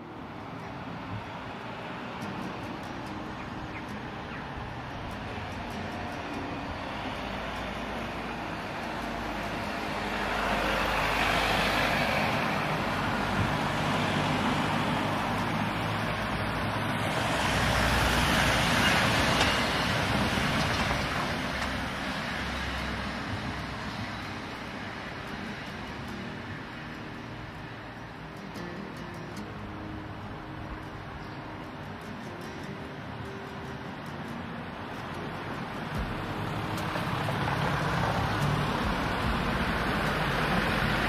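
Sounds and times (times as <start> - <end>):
background traffic: 0.0 - 41.0
cars driving past: 0.0 - 41.0.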